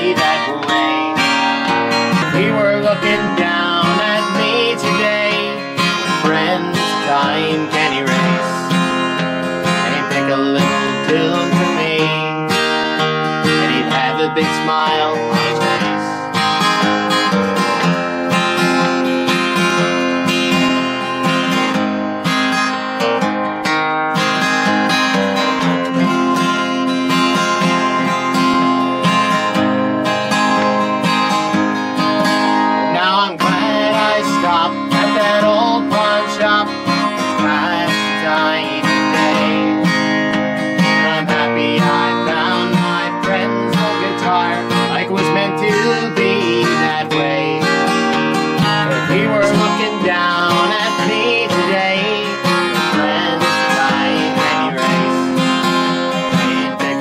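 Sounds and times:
acoustic guitar strumming: 0:00.0 - 0:57.0.

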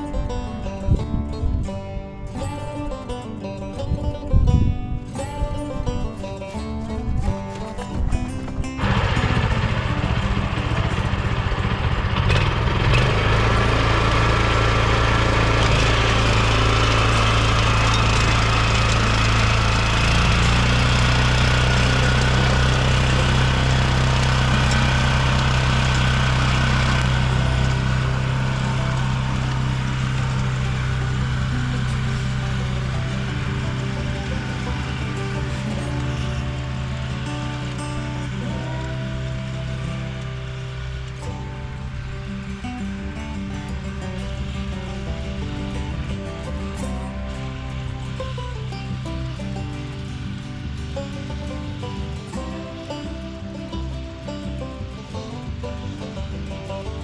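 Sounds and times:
cultivator engine tilling soil: 0:00.0 - 0:57.0.

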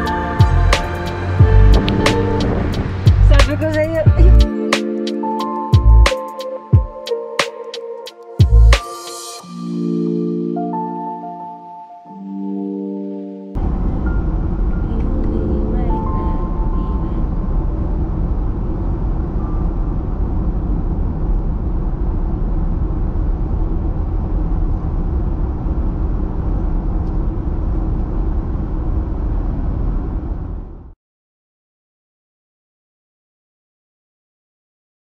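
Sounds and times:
car road and wind noise: 0:00.0 - 0:04.5, 0:13.5 - 0:31.0.

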